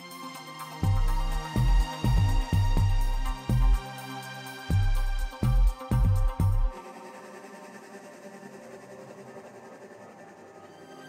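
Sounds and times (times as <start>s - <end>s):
sustained synth pads: 0.0s - 11.0s.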